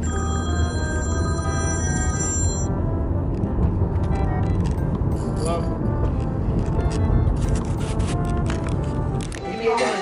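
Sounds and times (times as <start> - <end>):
bell-like ringing tone: 0.0 - 2.7.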